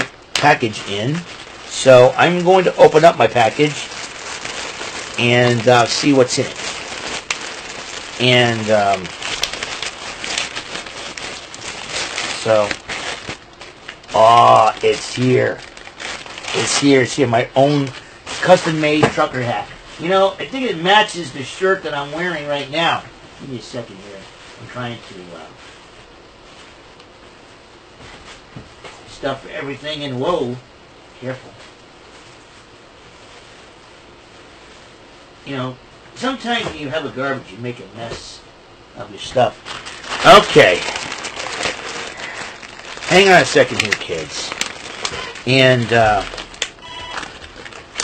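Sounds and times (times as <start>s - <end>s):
plastic wrapping crinkling: 0.0s - 22.6s, 39.4s - 48.0s
room noise hiss: 0.0s - 48.0s.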